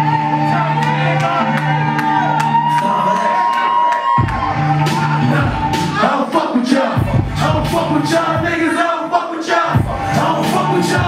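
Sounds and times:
hip hop beat over loudspeakers: 0.0 - 11.0.

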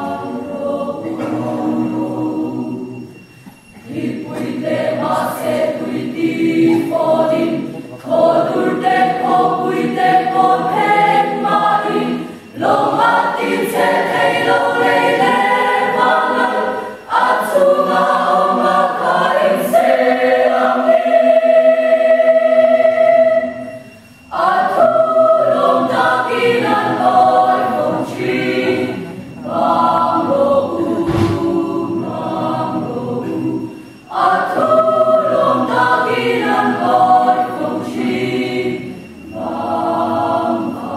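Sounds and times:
mixed choir singing: 0.0 - 40.9.

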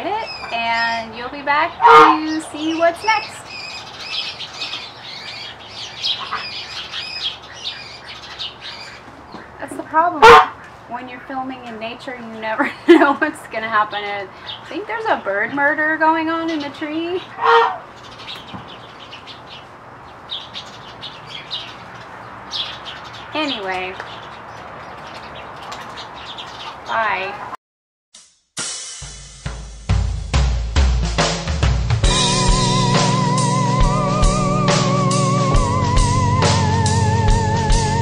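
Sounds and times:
birds calling agitatedly: 0.0 - 27.5.

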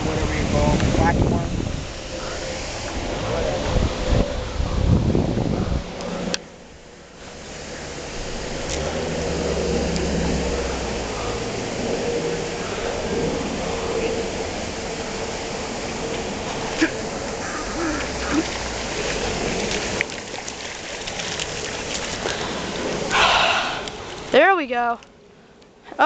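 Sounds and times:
wind rumbling on microphone: 0.0 - 25.4
hiss: 22.3 - 24.1.

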